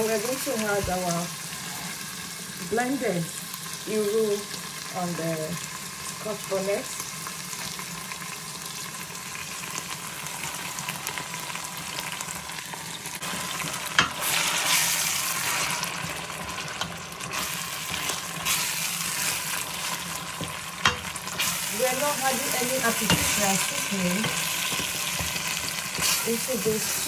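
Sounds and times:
onions sizzling in hot oil: 0:00.0 - 0:27.0
spatula stirring in pot: 0:13.2 - 0:27.0.

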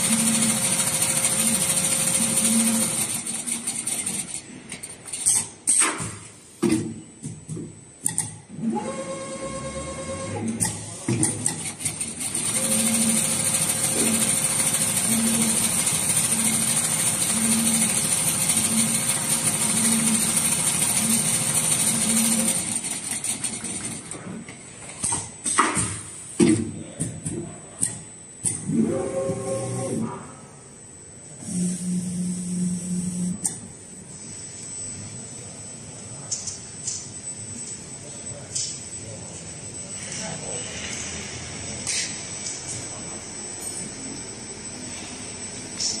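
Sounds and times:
sewing machine clattering: 0:11.6 - 0:24.1.

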